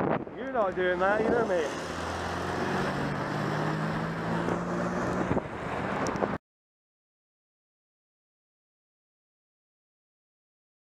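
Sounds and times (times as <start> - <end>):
wind rushing over microphone: 0.0 - 6.4.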